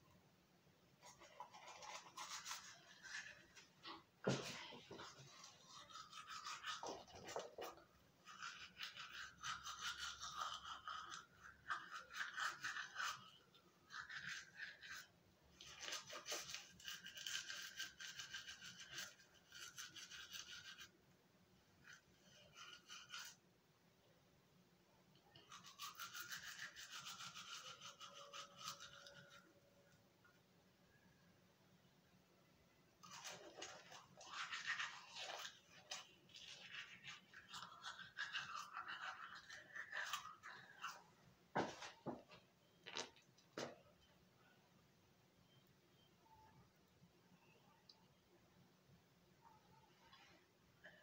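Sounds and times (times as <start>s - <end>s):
toothbrush scrubbing teeth: 1.0s - 21.0s, 21.8s - 23.4s, 25.2s - 29.5s, 33.0s - 43.7s.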